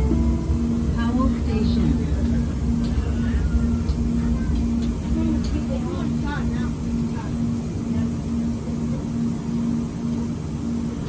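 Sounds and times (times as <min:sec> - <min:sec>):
pulsing low tone: 0:00.0 - 0:11.0
train running rumble: 0:00.0 - 0:11.0.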